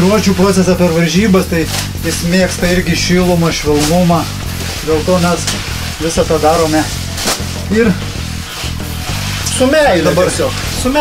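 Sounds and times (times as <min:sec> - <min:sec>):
background music: 0:00.0 - 0:11.0
leafy whisks rustling: 0:00.0 - 0:11.0
whisk swish: 0:00.7 - 0:11.0.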